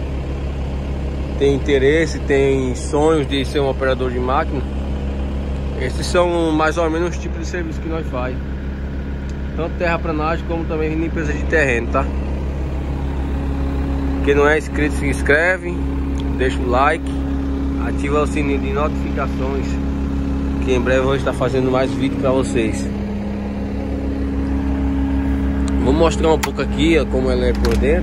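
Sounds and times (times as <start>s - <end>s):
diesel engine running: 0.0s - 28.0s.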